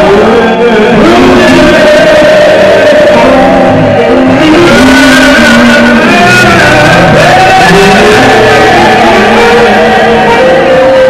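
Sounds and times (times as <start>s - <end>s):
church music with singing: 0.0s - 11.0s.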